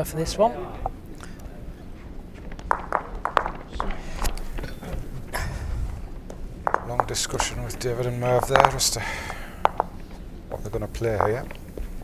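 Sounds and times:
low hall hum: 0.0s - 12.0s
lawn bowls clacking together: 2.6s - 5.0s.

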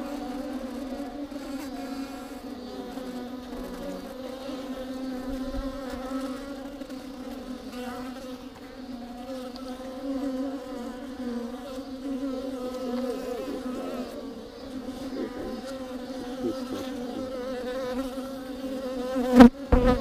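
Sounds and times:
honey bees buzzing: 0.0s - 20.0s.

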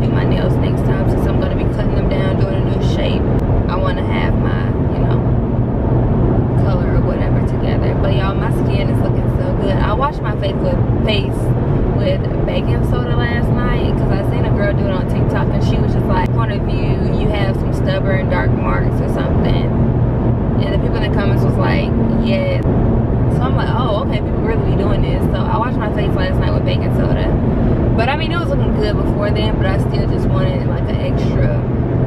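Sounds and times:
woman talking: 0.0s - 5.3s, 6.6s - 19.8s, 20.6s - 22.7s, 23.3s - 27.4s, 28.0s - 31.7s
car cabin road and engine drone: 0.0s - 32.0s.

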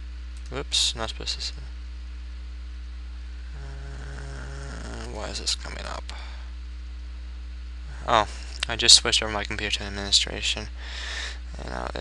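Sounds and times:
faint pitched hum: 0.0s - 12.0s
low electrical hum with hiss: 0.0s - 12.0s.

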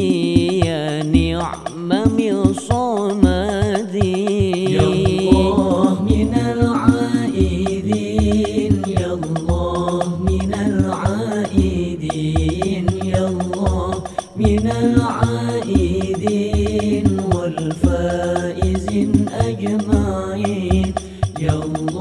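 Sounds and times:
man singing devotional verses: 0.0s - 22.0s
repeating low drum beat: 0.0s - 22.0s.

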